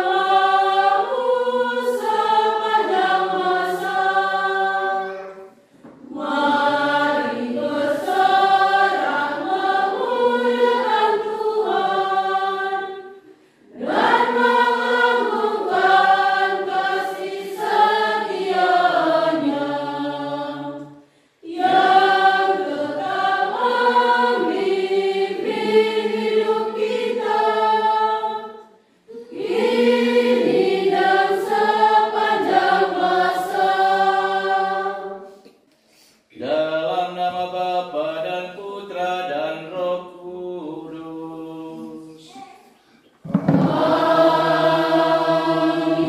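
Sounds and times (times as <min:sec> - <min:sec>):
congregation singing a hymn: 0:00.0 - 0:35.6, 0:36.3 - 0:46.0.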